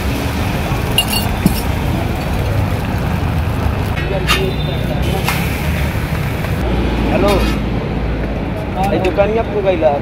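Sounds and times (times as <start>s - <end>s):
street rumble: 0.0s - 10.0s.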